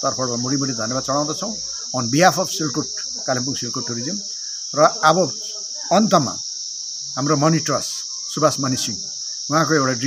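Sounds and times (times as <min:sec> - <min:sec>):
man talking: 0:00.0 - 0:04.2, 0:04.8 - 0:06.4, 0:07.2 - 0:10.0
high-pitched insect chirring: 0:00.0 - 0:10.0.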